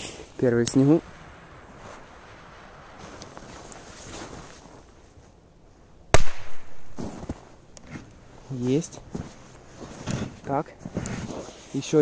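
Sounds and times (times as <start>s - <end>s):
firecracker bang: 6.1s - 7.1s.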